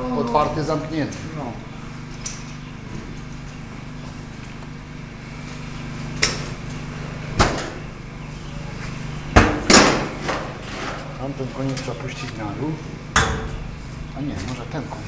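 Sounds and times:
steady low hum: 0.0 - 15.0
sharp metal knocks: 13.2 - 14.8.

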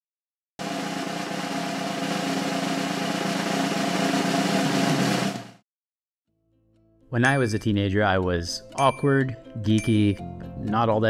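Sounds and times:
snare drum roll: 0.6 - 5.6.

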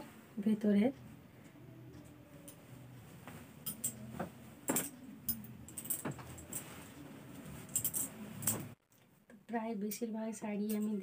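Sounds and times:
low steady hum: 0.0 - 9.6
metal bangles jangling: 3.6 - 4.1, 4.7 - 6.8, 7.5 - 8.8.

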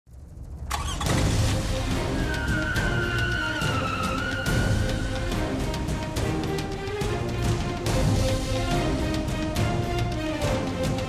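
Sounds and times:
music: 0.2 - 11.0
engine rumble and revving: 0.7 - 11.0.

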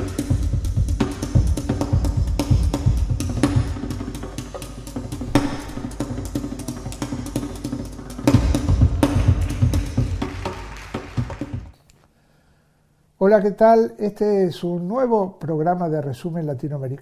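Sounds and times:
percussion theme music: 0.0 - 11.8
heavy low drum hits: 5.1 - 6.6.

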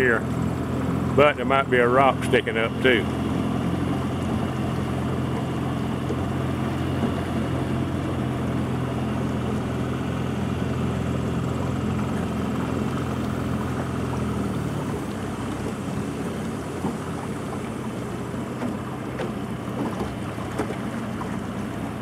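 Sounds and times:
boat motor humming: 0.0 - 22.0.

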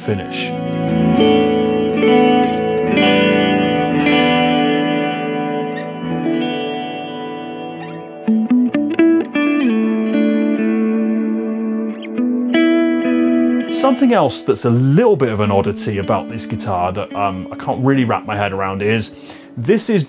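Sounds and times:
electric guitar playing: 0.0 - 20.0.

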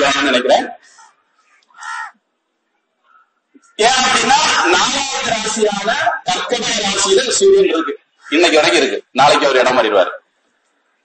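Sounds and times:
bird cawing: 0.8 - 2.2, 3.0 - 3.8, 7.7 - 8.6.

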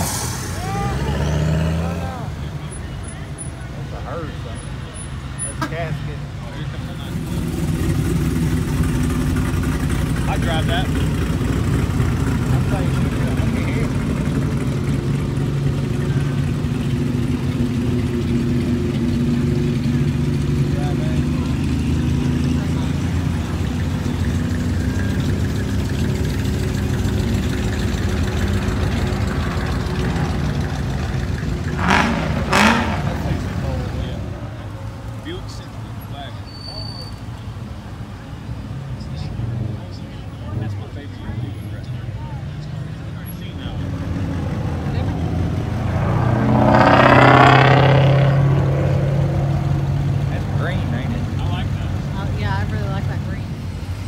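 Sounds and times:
vehicle engine rumble: 0.0 - 54.0.

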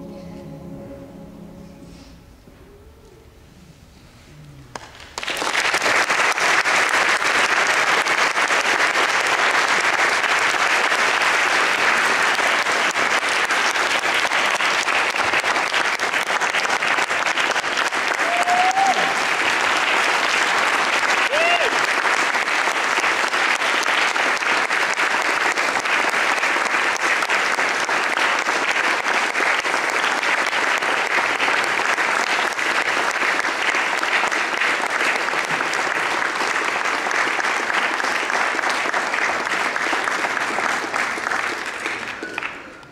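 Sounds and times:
audience clapping: 4.7 - 42.9
audience cheering: 17.9 - 22.2.

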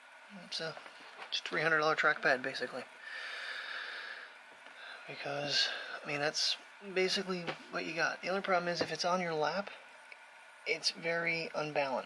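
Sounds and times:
long breathy exhale: 3.0 - 6.0.

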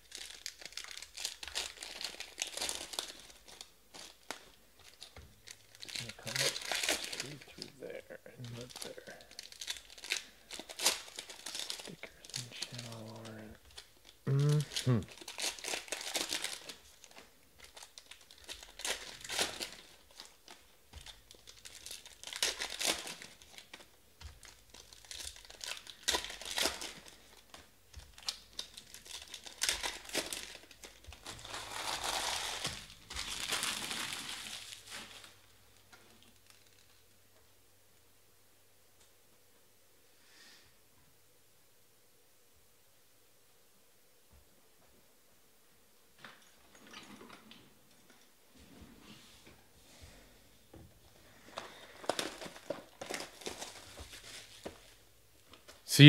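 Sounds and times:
foil packs tearing and crinkling: 0.0 - 37.0, 51.3 - 55.7.

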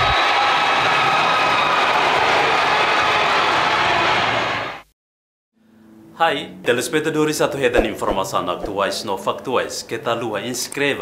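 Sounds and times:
basketball court sounds: 7.8 - 8.9.

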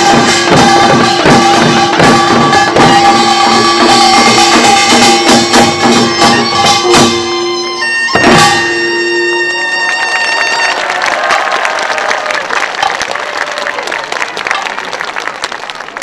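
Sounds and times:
drum and gong stroke: 0.0 - 9.5
audience applause: 9.3 - 16.0.

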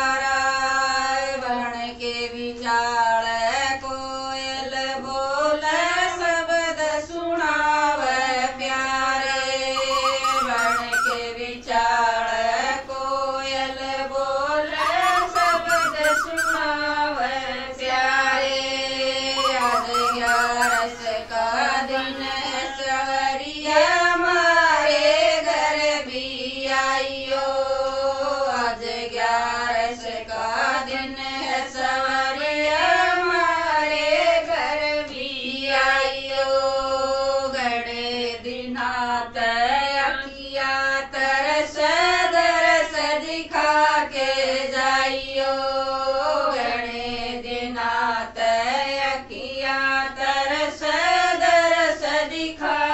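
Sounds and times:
women singing devotional song: 0.0 - 52.9
koel calling: 9.5 - 23.2.

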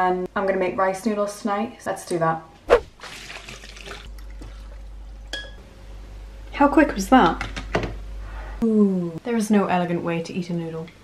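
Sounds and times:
liquid trickling and splashing: 2.9 - 5.3.

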